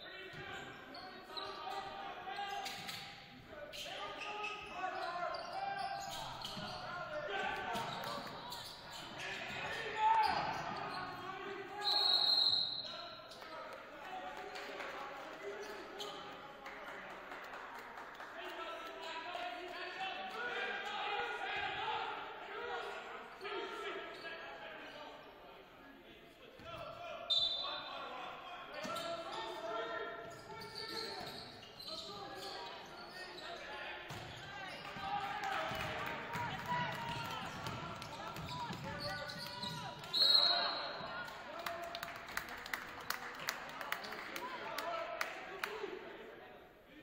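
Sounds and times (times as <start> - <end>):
indistinct voices in a gym: 0.0 - 47.0
referee's whistle: 11.8 - 13.1, 27.3 - 27.9, 38.4 - 41.1.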